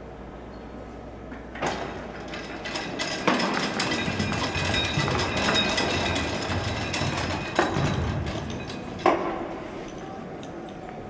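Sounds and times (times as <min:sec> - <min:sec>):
steel chains rattling and clanking: 0:01.5 - 0:10.0.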